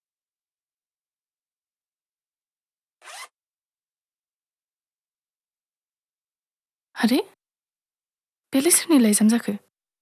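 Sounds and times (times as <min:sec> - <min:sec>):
zipper pulled open: 0:03.0 - 0:03.4.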